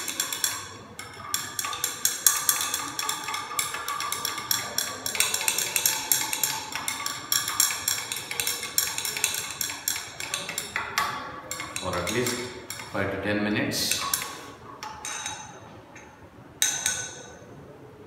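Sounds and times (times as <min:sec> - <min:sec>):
glass rod clinking in beaker: 0:00.0 - 0:13.0, 0:13.9 - 0:17.4.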